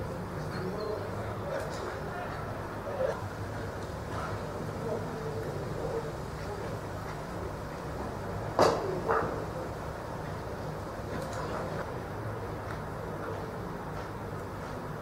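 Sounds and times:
distant voices hum: 0.0s - 15.0s.

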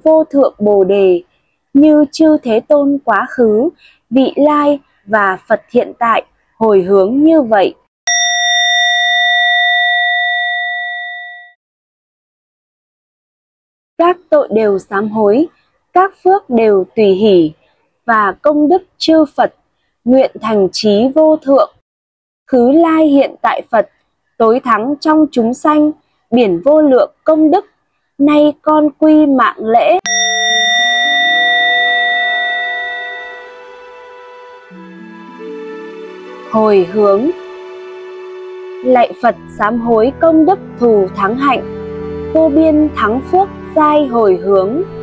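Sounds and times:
ritual bell ringing: 8.1s - 11.6s, 30.1s - 38.8s.

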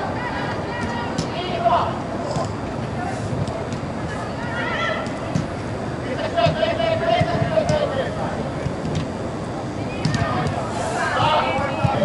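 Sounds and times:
indoor hall background noise: 0.0s - 12.0s.

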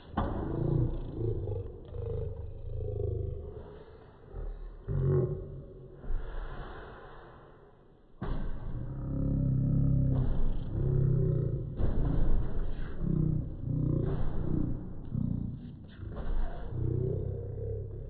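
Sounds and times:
man making low vocal sounds: 0.0s - 6.4s, 8.2s - 18.0s.

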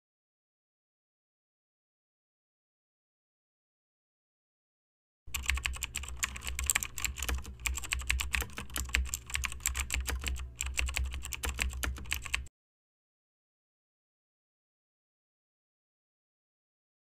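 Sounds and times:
keyboard typing clicks: 5.3s - 12.5s.

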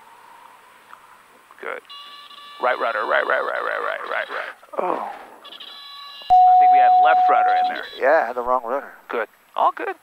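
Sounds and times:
horn-like tone: 6.3s - 8.0s.

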